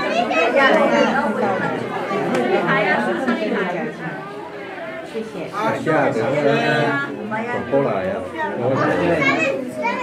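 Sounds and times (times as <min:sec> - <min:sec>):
overlapping chatter of voices: 0:00.0 - 0:10.0.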